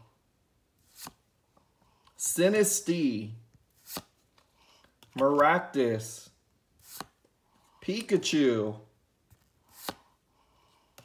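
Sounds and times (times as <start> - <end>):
card flick: 3.8 - 4.2, 6.8 - 7.2, 9.7 - 10.0.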